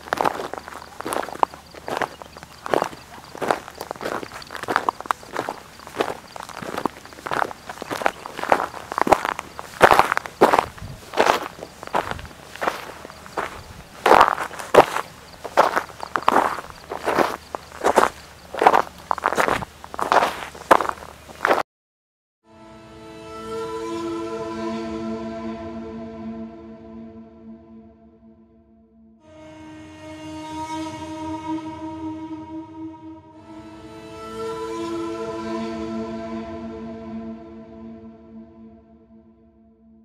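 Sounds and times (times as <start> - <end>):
footsteps crunching on dry mud: 0.0 - 21.6.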